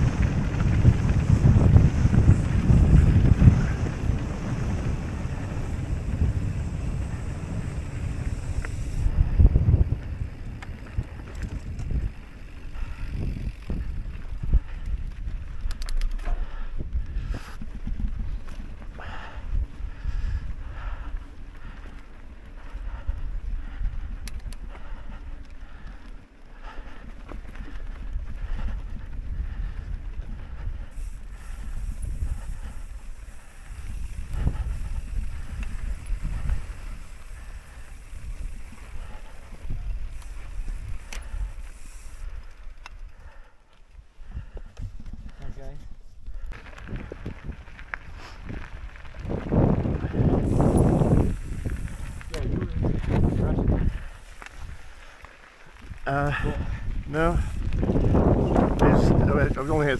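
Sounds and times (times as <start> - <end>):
wind on microphone: 0.0 - 26.0, 26.6 - 43.4, 44.2 - 55.1, 55.7 - 59.9
bike tyre rumble on dirt: 0.0 - 59.9.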